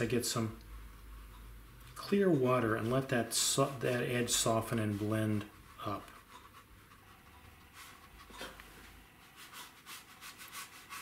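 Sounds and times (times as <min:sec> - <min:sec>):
brush stroking on paper: 0:02.1 - 0:11.0.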